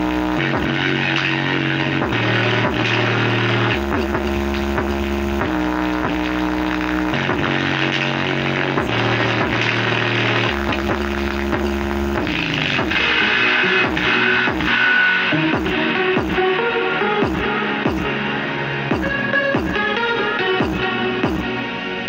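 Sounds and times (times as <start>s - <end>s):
deep bass notes through woofer: 0.0s - 14.8s.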